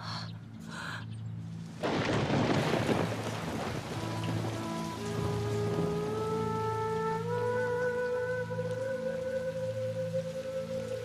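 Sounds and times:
soft sustained music notes: 0.0s - 11.0s
steady rain falling: 0.0s - 11.0s.

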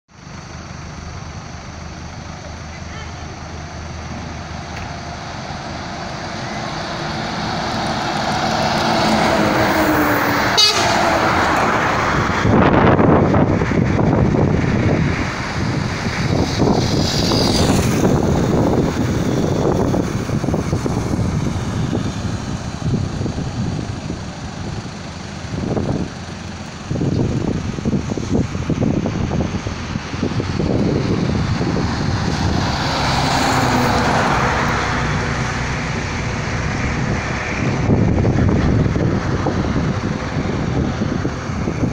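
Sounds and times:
vehicles passing close by: 0.1s - 41.9s.

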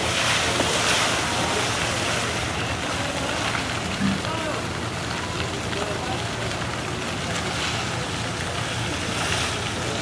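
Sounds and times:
elephant splashing through water: 0.0s - 4.3s
faint voices: 0.0s - 10.0s.

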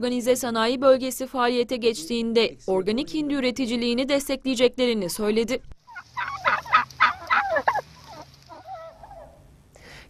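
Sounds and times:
turkeys gobbling: 5.8s - 9.5s.

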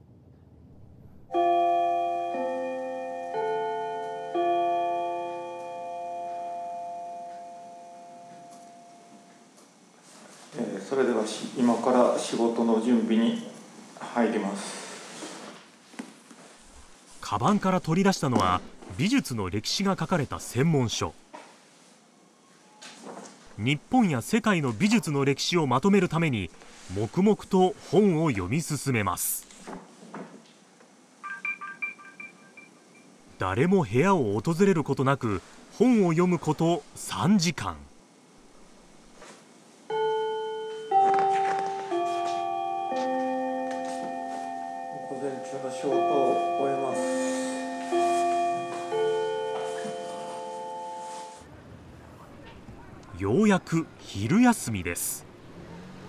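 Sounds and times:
electronic building chime: 39.9s - 51.4s.

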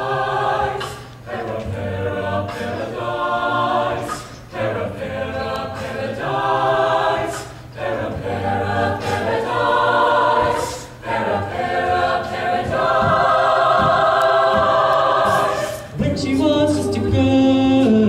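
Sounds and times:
a cappella choir singing: 0.0s - 18.0s.

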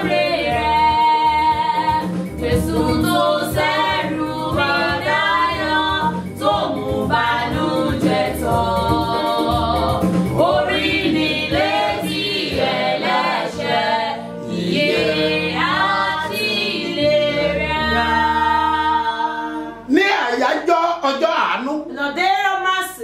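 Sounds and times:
gospel singing: 0.0s - 20.1s.

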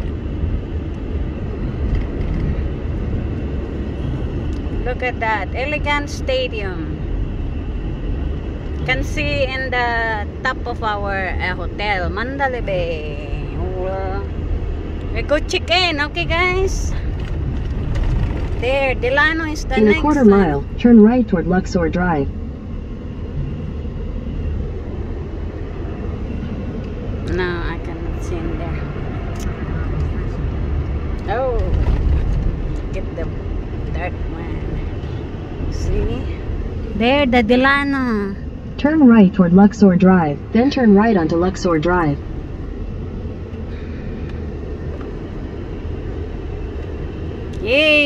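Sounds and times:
car road and engine rumble: 0.0s - 48.0s.

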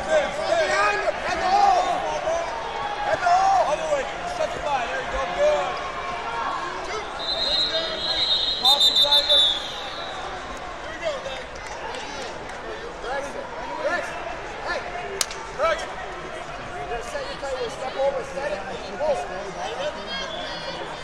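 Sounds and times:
crowd chatter in a gym: 0.0s - 21.0s
referee's whistle blasts: 7.1s - 10.4s.

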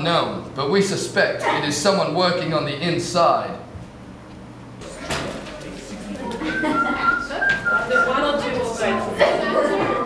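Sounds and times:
voices: 4.8s - 10.0s
person whistling a tune: 6.6s - 8.1s.

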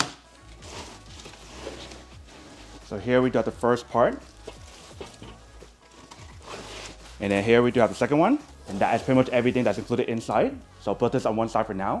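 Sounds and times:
packaging handling noise: 0.0s - 10.4s
soft background music: 0.0s - 12.0s.

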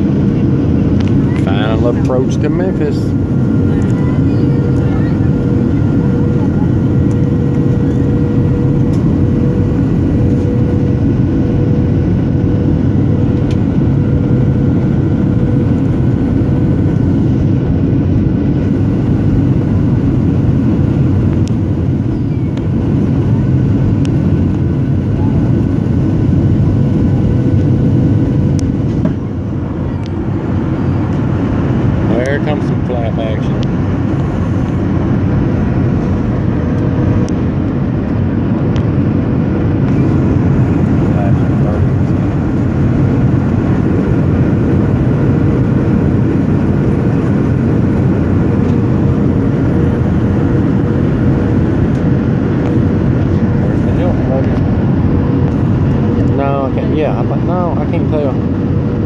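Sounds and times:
airliner cabin engine drone: 0.0s - 59.0s.

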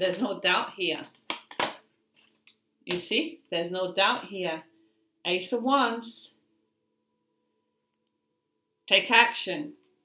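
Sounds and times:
person speaking: 0.0s - 1.8s, 2.9s - 4.7s.

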